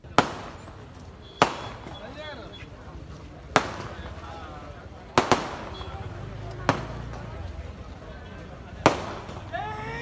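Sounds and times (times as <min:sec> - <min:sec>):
firecracker bang: 0:00.0 - 0:02.1, 0:03.4 - 0:07.5, 0:08.7 - 0:09.6
crowd hubbub: 0:00.0 - 0:10.0.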